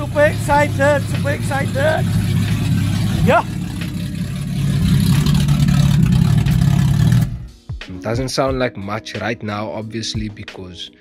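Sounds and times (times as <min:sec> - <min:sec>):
car engine idling: 0:00.0 - 0:07.5.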